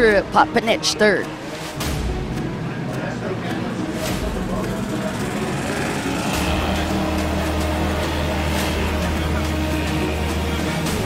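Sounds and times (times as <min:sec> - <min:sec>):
background music: 0:00.0 - 0:11.0
jet ski engine drone: 0:03.7 - 0:10.4.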